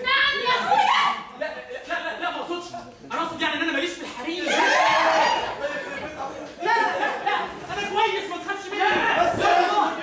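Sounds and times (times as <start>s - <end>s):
people shouting together: 4.4s - 5.6s.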